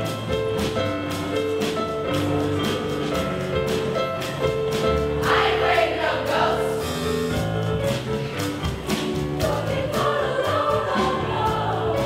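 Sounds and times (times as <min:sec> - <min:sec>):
instrumental accompaniment with beat: 0:00.0 - 0:12.0
choir singing: 0:05.2 - 0:07.2, 0:09.4 - 0:12.0.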